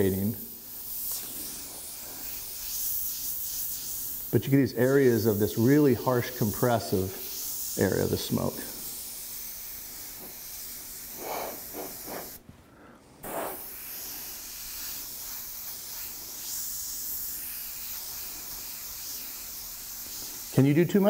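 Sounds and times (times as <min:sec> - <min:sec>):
airbrush hissing: 0:00.0 - 0:12.4, 0:13.2 - 0:21.0.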